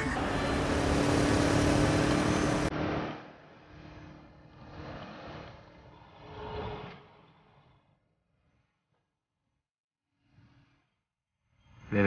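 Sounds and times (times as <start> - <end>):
street sound: 0.0 - 4.4
road traffic: 0.0 - 5.4.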